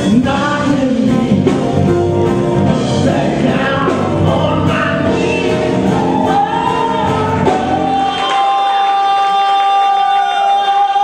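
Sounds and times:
live soul band playing: 0.0s - 11.0s
backing voices singing: 2.7s - 11.0s
man belting vocals: 2.7s - 11.0s.

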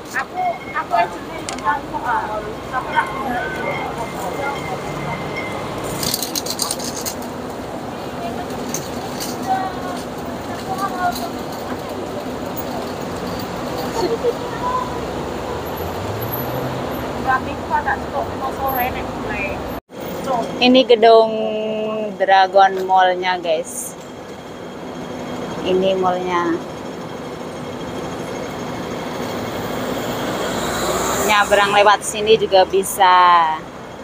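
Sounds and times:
passing vehicles rumble and hiss: 0.0s - 34.0s
street traffic noise: 0.0s - 34.0s
car engine hum passing: 11.9s - 19.8s, 26.8s - 34.0s.

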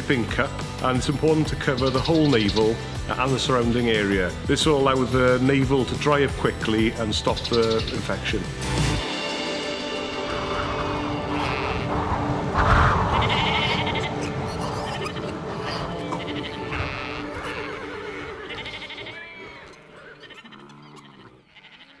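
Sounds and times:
soft background music: 0.0s - 19.4s
brief rush of noise: 9.9s - 16.3s
sheep bleating: 10.3s - 12.0s, 13.0s - 22.0s.

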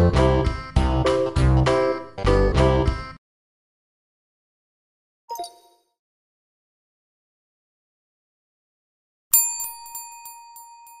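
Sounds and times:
bright bell ringing: 9.3s - 11.0s.

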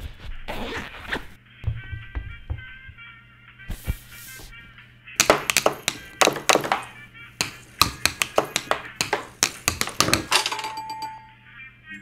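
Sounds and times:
pouches tapping on wooden tabletop: 5.2s - 10.7s.

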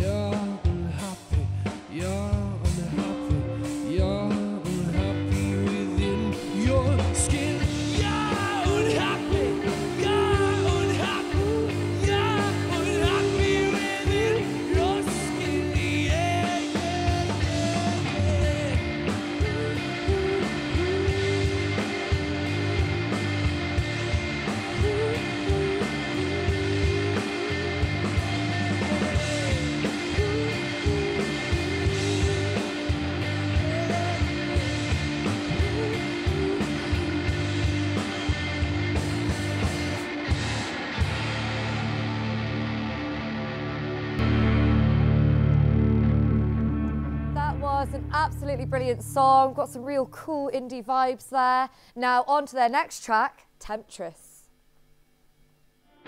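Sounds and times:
electric guitar: 0.0s - 50.2s
bass guitar: 0.0s - 50.3s.

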